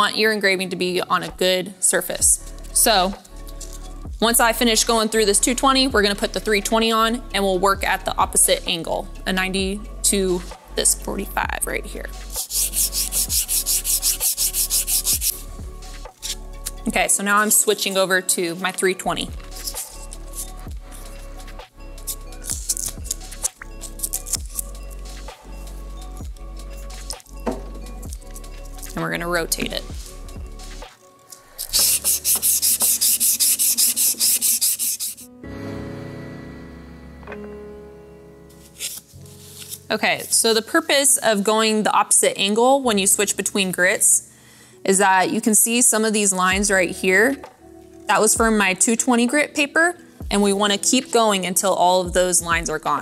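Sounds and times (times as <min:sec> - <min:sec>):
background music with sustained chords: 0:00.2 - 0:52.2
sandpaper scraping metal: 0:12.2 - 0:15.5, 0:16.1 - 0:16.4, 0:19.5 - 0:21.2, 0:22.0 - 0:25.0, 0:31.5 - 0:35.3, 0:38.6 - 0:40.6.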